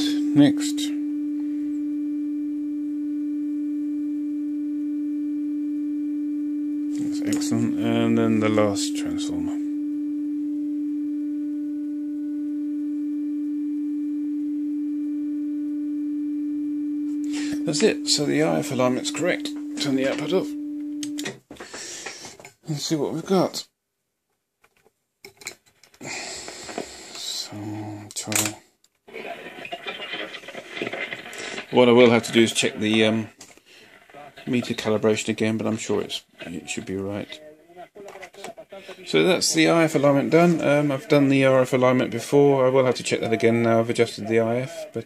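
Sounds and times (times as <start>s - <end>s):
steady low test tone: 0.0s - 21.2s.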